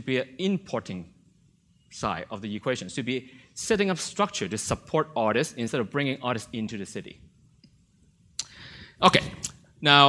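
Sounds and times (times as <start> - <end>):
person speaking: 1.9 - 7.2, 8.4 - 10.0
person breathing in: 8.4 - 9.0.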